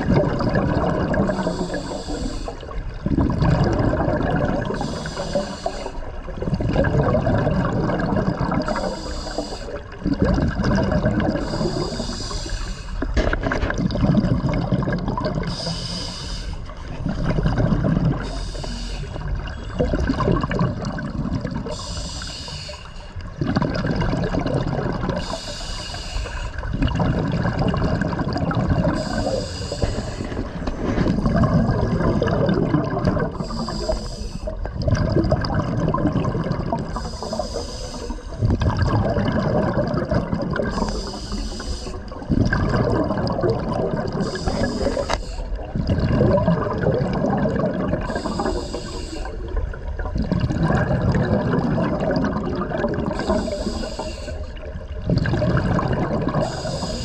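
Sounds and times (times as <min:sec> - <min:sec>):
exhaled bubbles underwater: 0:00.0 - 0:57.0
regulator inhalation hiss: 0:01.3 - 0:02.7, 0:04.8 - 0:06.1, 0:08.7 - 0:09.8, 0:11.4 - 0:13.0, 0:15.5 - 0:16.7, 0:18.2 - 0:19.2, 0:21.7 - 0:23.1, 0:25.2 - 0:26.6, 0:29.0 - 0:30.5, 0:33.4 - 0:34.6, 0:36.9 - 0:38.4, 0:40.7 - 0:42.1, 0:44.2 - 0:45.7, 0:48.1 - 0:49.6, 0:53.2 - 0:54.7, 0:56.4 - 0:57.0.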